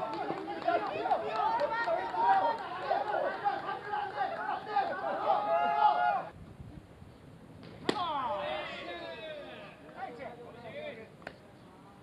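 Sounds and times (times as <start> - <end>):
voices calling and chattering: 0.0 - 6.3, 7.8 - 12.0.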